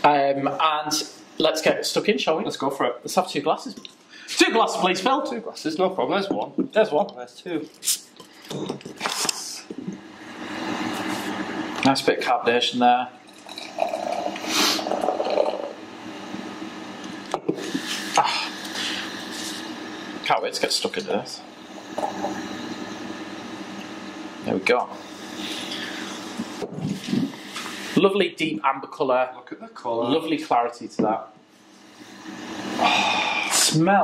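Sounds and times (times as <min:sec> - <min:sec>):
machinery humming: 0:09.8 - 0:28.4, 0:31.5 - 0:33.9
beer pouring into a glass: 0:13.2 - 0:15.8
bottle opening hiss: 0:13.8 - 0:15.2.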